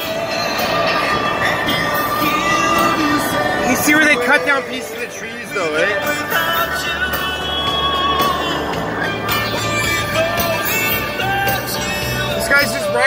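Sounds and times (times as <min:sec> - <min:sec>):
music with held notes: 0:00.0 - 0:13.0
steady bass line: 0:00.0 - 0:13.0.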